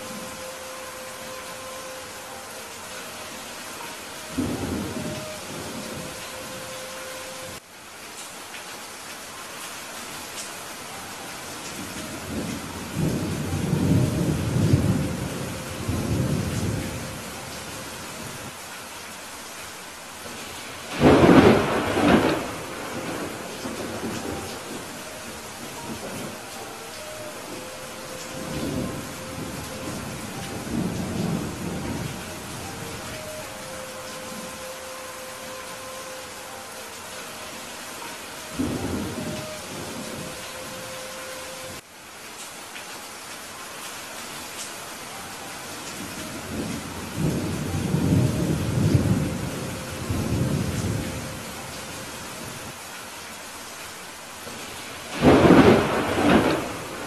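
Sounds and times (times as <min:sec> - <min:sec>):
steady rain hiss: 0:00.0 - 0:57.0
rolling thunder: 0:20.9 - 0:33.4, 0:55.1 - 0:57.0.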